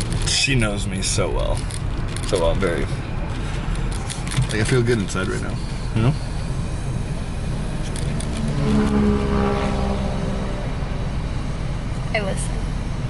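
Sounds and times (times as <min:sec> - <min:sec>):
car engine and cabin rumble: 0:00.0 - 0:13.0.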